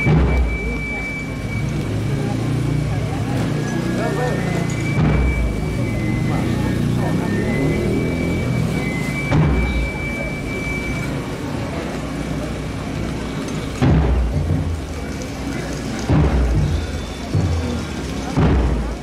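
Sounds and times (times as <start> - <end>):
deep booms: 0.0 - 0.9, 4.8 - 6.1, 9.3 - 10.2, 13.8 - 15.1, 16.0 - 19.0
crowd murmur: 0.0 - 19.0.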